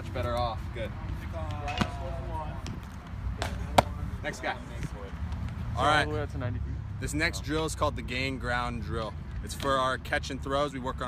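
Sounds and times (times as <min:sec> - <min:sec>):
ball smacking into mitt: 0:03.4 - 0:04.0.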